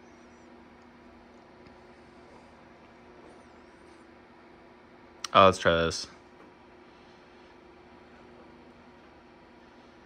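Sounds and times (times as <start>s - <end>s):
low two-tone hum: 0.0s - 10.0s.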